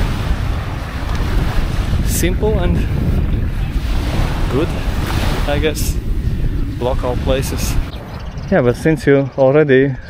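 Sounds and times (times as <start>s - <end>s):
small waves washing onto sand: 0.0s - 8.0s
wind buffeting microphone: 0.0s - 10.0s.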